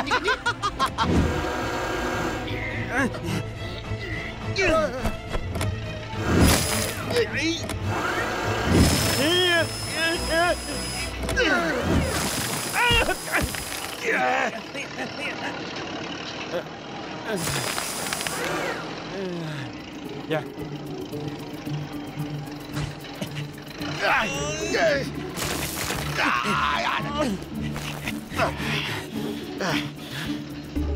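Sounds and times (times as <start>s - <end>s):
background music: 0.0s - 14.8s, 18.6s - 30.9s
machine motor: 7.7s - 11.4s, 17.3s - 19.0s
cartoon characters yelling and grunting: 11.3s - 14.7s, 23.8s - 25.2s, 26.0s - 27.4s.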